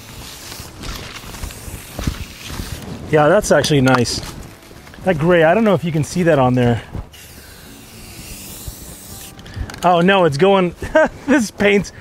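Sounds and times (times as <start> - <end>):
spray can hissing: 0.0 - 2.9, 7.1 - 9.4.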